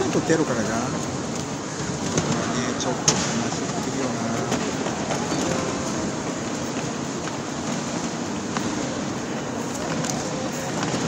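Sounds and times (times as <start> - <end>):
urban background noise: 0.0 - 11.0.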